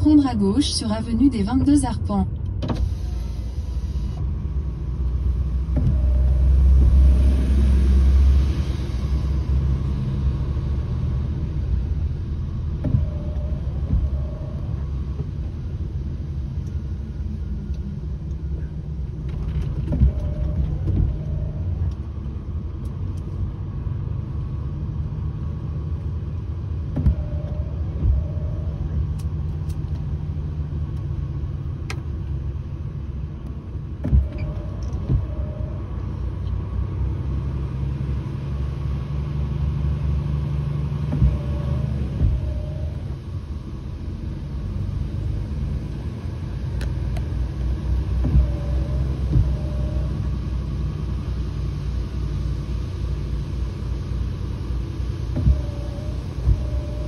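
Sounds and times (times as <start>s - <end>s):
vehicle engine and tyres rumbling: 0.0s - 57.0s.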